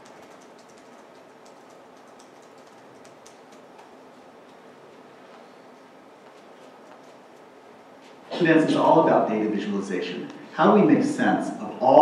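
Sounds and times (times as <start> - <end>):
computer keys tapping: 0.0 - 4.7
room hiss: 0.0 - 12.0.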